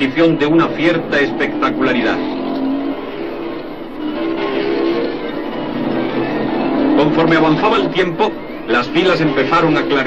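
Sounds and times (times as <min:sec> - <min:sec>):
background music: 0:00.0 - 0:10.0
motorcycle engines racing: 0:00.0 - 0:10.0.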